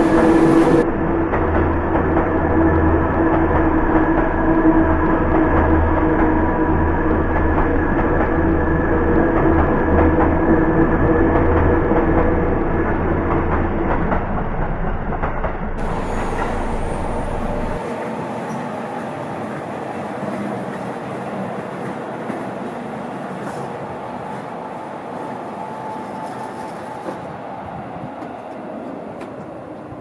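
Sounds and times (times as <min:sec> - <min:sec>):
distant electric train running: 0:00.0 - 0:30.0
electric train passing: 0:00.0 - 0:30.0.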